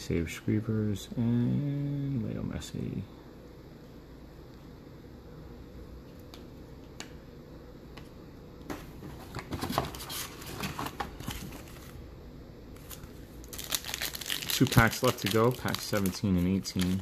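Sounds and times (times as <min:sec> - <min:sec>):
foil pack tearing open: 0:12.8 - 0:17.0
foil wrapper crinkling: 0:12.8 - 0:17.0.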